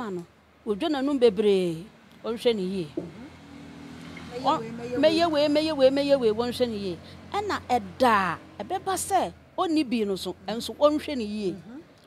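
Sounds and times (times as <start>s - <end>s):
woman speaking: 0.0s - 3.3s, 4.3s - 11.9s
vehicle engine humming: 0.4s - 12.0s.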